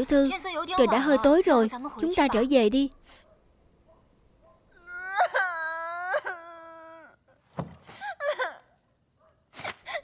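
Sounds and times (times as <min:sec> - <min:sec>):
woman wailing sobs: 0:04.8 - 0:07.2, 0:08.0 - 0:08.7.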